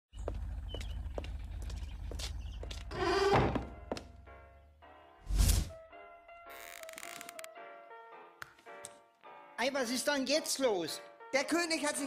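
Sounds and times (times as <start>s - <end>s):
footsteps walking: 0.3s - 2.9s
wooden door creaking open: 2.6s - 4.1s.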